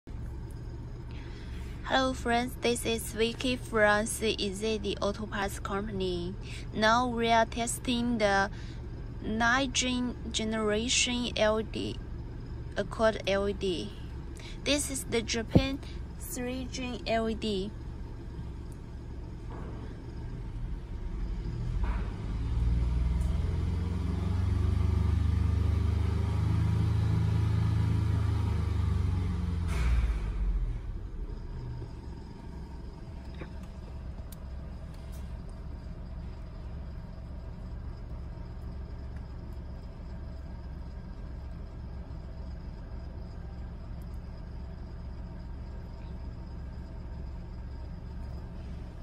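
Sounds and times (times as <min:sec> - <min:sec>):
car engine idling and revving: 0:00.0 - 0:49.0.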